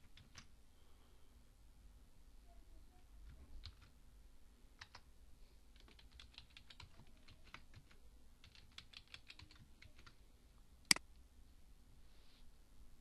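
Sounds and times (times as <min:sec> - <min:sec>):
typing on keyboard: 0:03.2 - 0:04.0, 0:04.8 - 0:05.0, 0:05.8 - 0:10.2.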